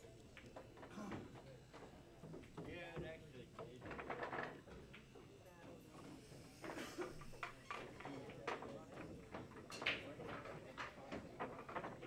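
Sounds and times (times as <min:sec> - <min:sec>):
background chatter: 0:00.0 - 0:12.0
pool balls clicking: 0:08.5 - 0:12.0.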